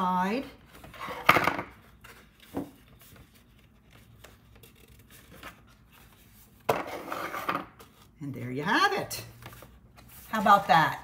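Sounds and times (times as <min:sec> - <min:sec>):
cardstock rubbing and scraping: 0:03.0 - 0:08.0.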